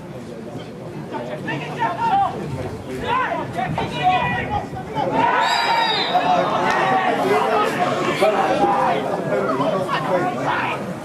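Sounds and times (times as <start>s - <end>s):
men calling and shouting: 1.0s - 11.0s
loud drawn-out shout: 3.0s - 9.0s.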